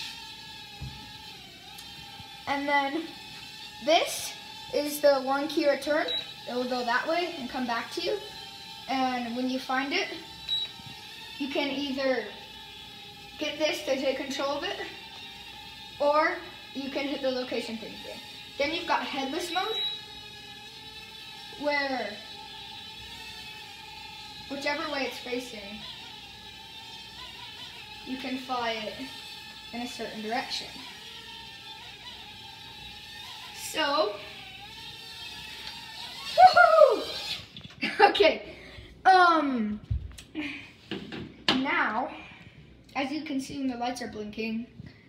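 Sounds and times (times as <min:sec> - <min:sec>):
drone motors whining: 0:00.0 - 0:41.0.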